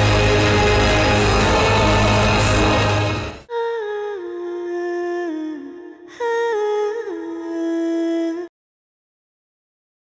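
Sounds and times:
dramatic background score: 0.0 - 3.6.

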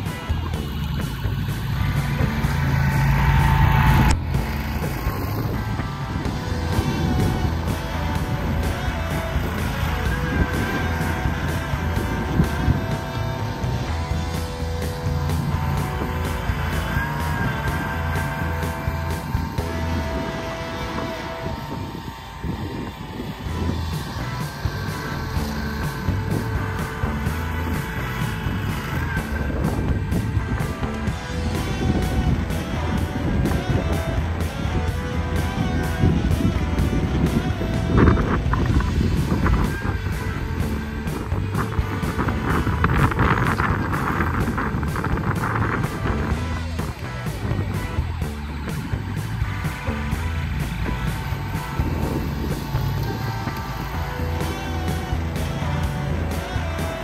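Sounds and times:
background music with beat: 0.0 - 57.0
snowcat engine running: 0.0 - 57.0.

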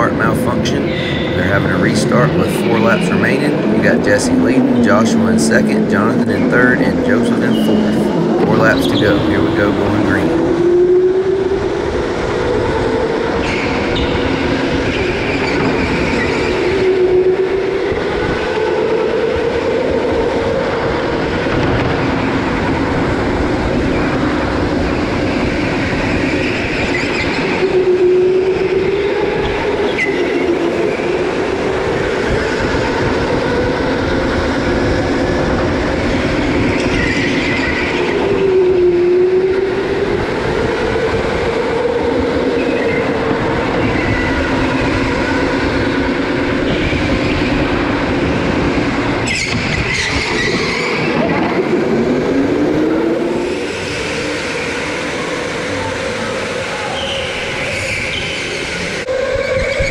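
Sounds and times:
go-kart motor at speed: 0.0 - 59.9.

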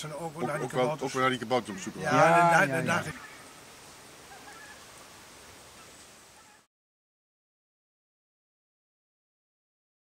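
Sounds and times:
soft even hiss: 0.0 - 6.7
faint bird calls: 1.7 - 3.6, 4.2 - 5.1, 5.7 - 6.7.

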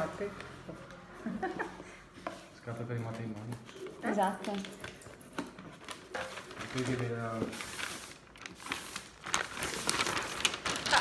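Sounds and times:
wrapping paper rustling: 2.6 - 11.0.

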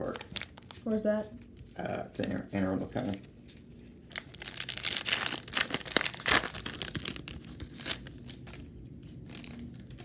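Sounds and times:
wrapper ripping: 0.0 - 0.8, 4.1 - 8.6, 9.3 - 9.9
wrapper crinkling: 0.0 - 2.4, 4.1 - 10.0.

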